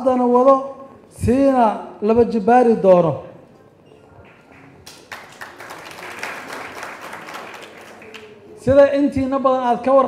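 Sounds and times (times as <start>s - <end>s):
audience applauding: 4.3s - 8.5s.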